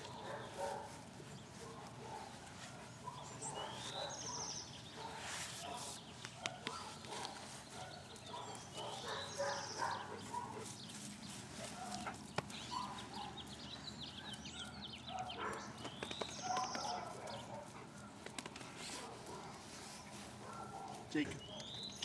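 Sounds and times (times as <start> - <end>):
birds chirping: 0.0 - 18.4, 19.0 - 22.0.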